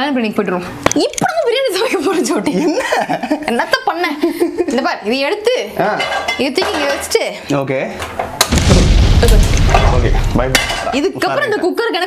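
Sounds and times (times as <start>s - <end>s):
fireball whoosh: 8.5s - 10.6s.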